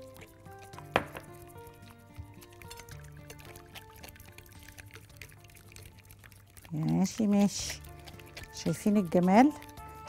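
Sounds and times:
soft background music: 0.0 - 10.0
whisk beating batter in glass dish: 3.1 - 10.0.

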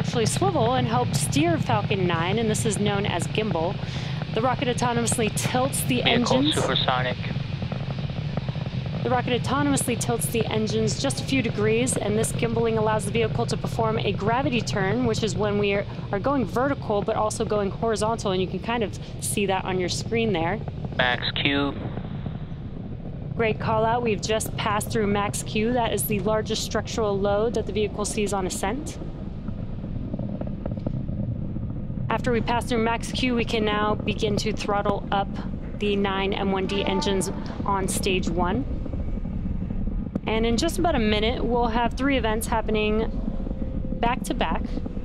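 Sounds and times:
rocket engines rumbling: 0.0 - 45.0.

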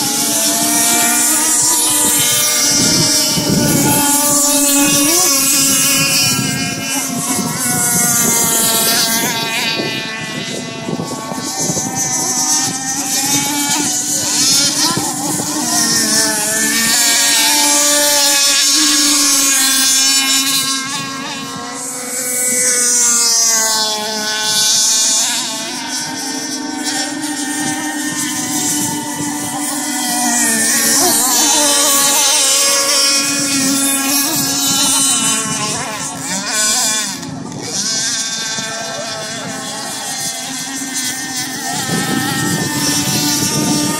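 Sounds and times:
model boat engines revving: 0.0 - 43.9.

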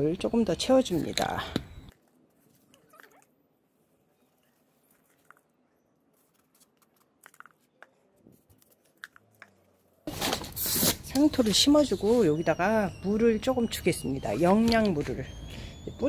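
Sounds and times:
potting soil rustling: 3.8 - 12.6.

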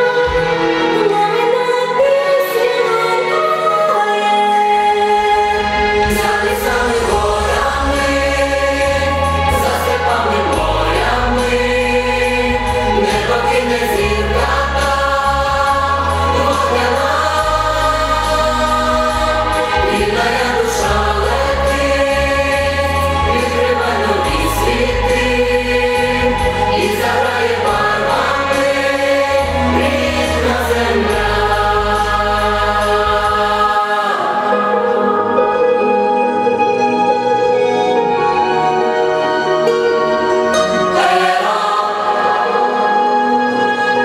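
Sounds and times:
choir singing: 0.0 - 44.0
instrumental accompaniment: 0.0 - 44.0.

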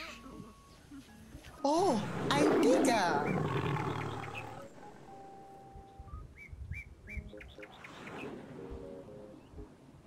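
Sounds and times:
bird chirps: 3.2 - 4.8, 5.4 - 8.4.

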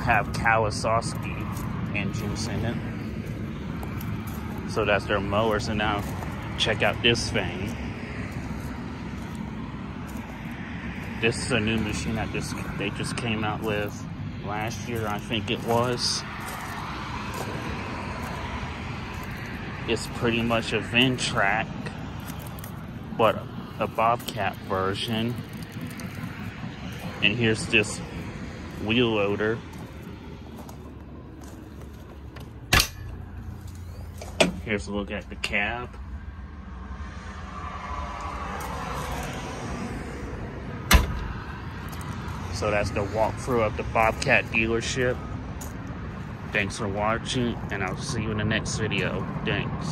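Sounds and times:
distant road traffic rumble: 0.0 - 49.9
outdoor background noise: 0.0 - 49.9
door latch clack: 40.9 - 41.3.

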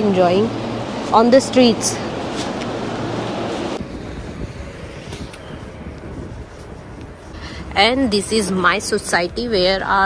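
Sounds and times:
low street rumble: 0.0 - 10.0
outdoor background hiss: 0.0 - 10.0.

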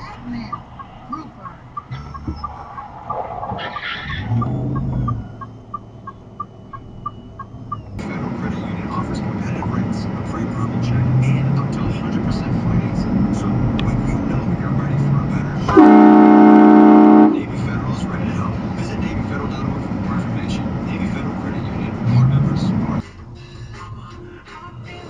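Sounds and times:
rough road noise: 0.0 - 23.0
car road and engine noise: 0.0 - 25.0.

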